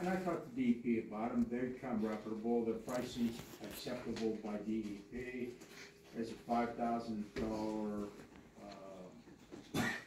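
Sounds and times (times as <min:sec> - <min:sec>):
man speaking hesitantly: 0:00.0 - 0:09.2.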